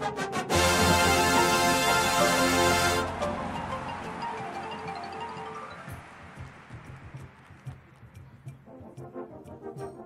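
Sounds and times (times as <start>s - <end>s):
baritone horns running figure: 0.0s - 5.5s
brass held chord: 0.1s - 4.1s
faint percussion ticks: 3.5s - 10.0s.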